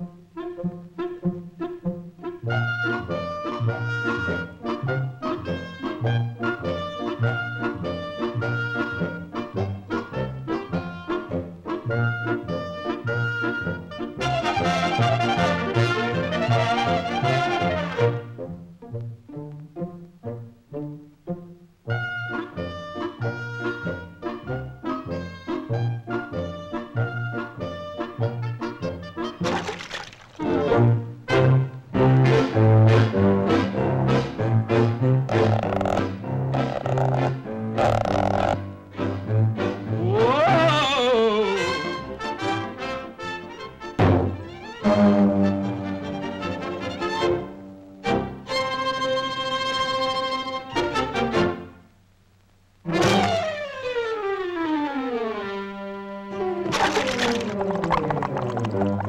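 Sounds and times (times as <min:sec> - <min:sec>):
brass-led orchestral cartoon music: 0:00.0 - 0:40.9, 0:41.5 - 0:51.9, 0:52.9 - 0:57.8.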